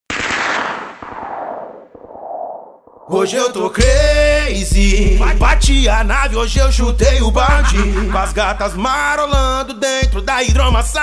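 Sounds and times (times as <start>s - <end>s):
rapid burst of sharp bangs: 0.1s - 3.3s.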